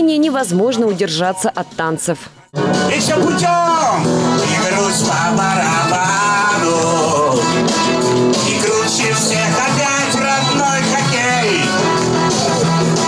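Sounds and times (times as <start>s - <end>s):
instrumental accompaniment with beat: 2.5s - 13.0s
man singing into microphone: 2.9s - 11.8s.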